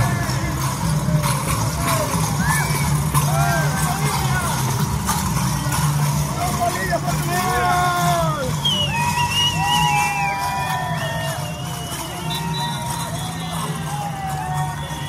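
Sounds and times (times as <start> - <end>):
music: 0.0 - 15.0
voices shouting and calling: 0.0 - 15.0
whistle-like held notes: 8.5 - 15.0.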